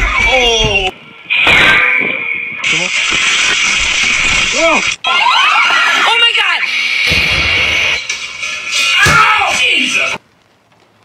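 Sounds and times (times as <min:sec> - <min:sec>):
people shouting and exclaiming: 0:00.0 - 0:00.9, 0:04.6 - 0:06.7, 0:08.9 - 0:10.2.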